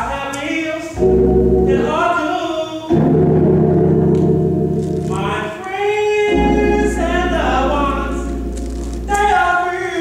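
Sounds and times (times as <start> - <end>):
keyboard chord: 0.9 - 10.0
gospel choir singing: 5.2 - 8.5.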